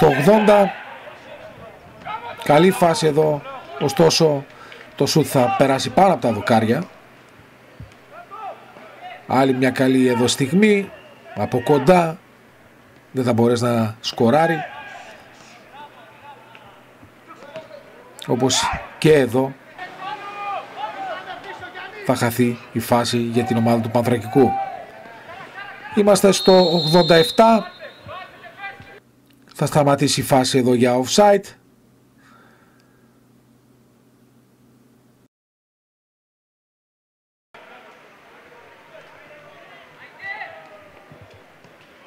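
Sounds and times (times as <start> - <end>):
players shouting: 0.0 - 7.0, 8.0 - 12.2, 14.2 - 29.0, 37.6 - 42.0
distant voices: 14.1 - 29.0.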